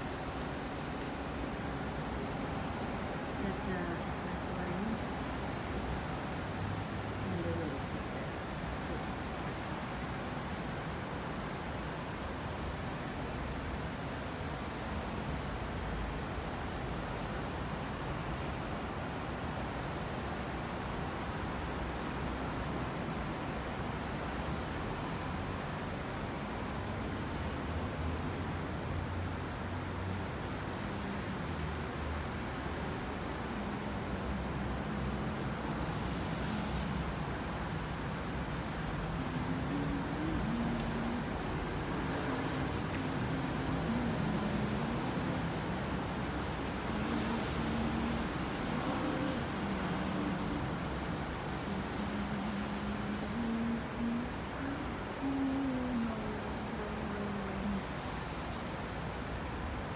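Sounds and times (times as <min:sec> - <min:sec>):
low rumble of street traffic: 0:00.0 - 0:59.9
rain on wet paving: 0:00.0 - 0:59.9.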